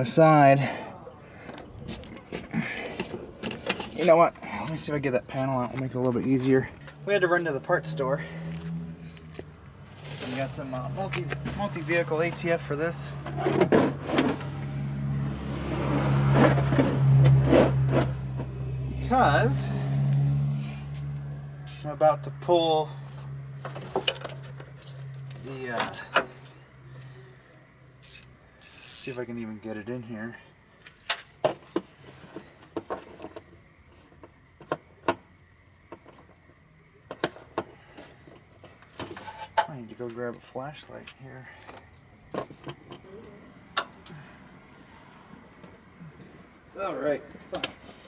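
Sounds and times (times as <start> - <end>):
tools clicking and knocking: 28.0 - 29.2.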